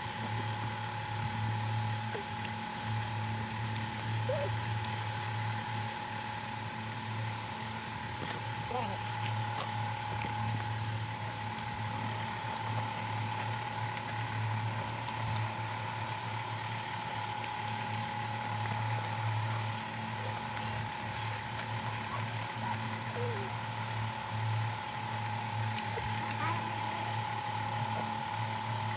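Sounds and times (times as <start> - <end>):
motor humming with thin tone: 0.0 - 28.9
eating by hand clicks: 12.4 - 15.7, 17.0 - 23.4, 24.9 - 28.5.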